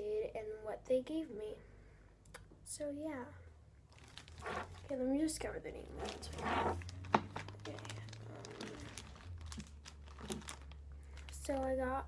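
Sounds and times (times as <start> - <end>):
plastic bag crinkling: 3.9 - 5.1, 5.8 - 11.8.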